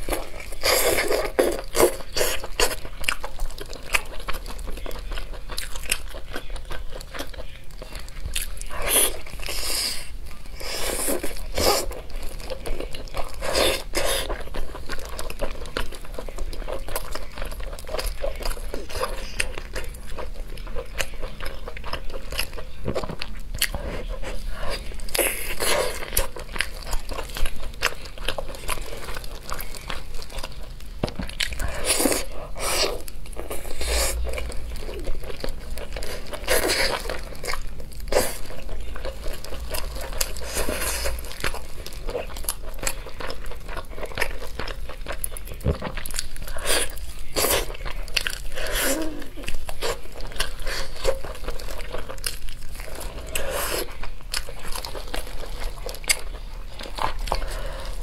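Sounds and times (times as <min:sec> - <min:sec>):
wet chewing and biting: 0:00.0 - 0:58.0.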